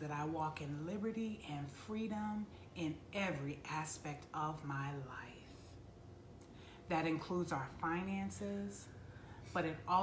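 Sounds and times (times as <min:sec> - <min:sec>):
woman speaking: 0:00.0 - 0:05.8, 0:06.9 - 0:10.0
low steady hum: 0:00.0 - 0:10.0.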